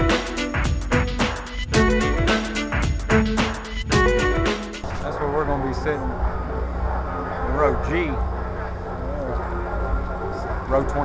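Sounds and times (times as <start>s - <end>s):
faint voices: 4.8s - 11.0s.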